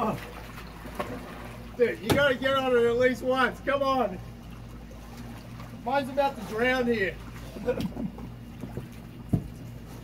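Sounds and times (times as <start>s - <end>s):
water sloshing: 0.0s - 10.0s
man laughing: 7.4s - 8.3s.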